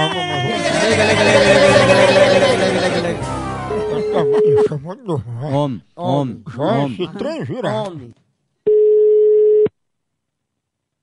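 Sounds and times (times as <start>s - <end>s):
person shouting: 0.0s - 3.2s
telephone line tone: 8.7s - 9.7s.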